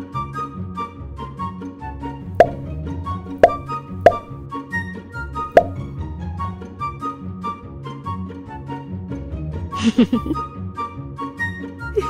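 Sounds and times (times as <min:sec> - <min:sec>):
light music with plucked notes: 0:00.0 - 0:12.0
loud pop sound effects: 0:02.3 - 0:02.7, 0:03.4 - 0:04.4, 0:05.6 - 0:05.9.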